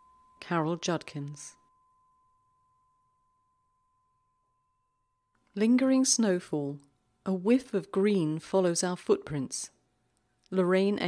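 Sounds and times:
faint high-pitched tone: 0.0 - 6.9.

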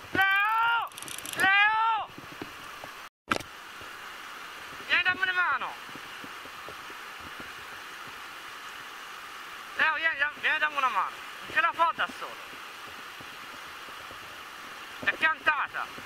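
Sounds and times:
river water rushing over rapids: 2.4 - 16.0.

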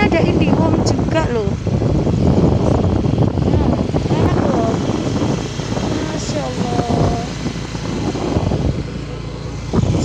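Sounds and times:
motorbike engine and road noise: 0.0 - 10.0
wind rushing over microphone: 0.0 - 10.0.

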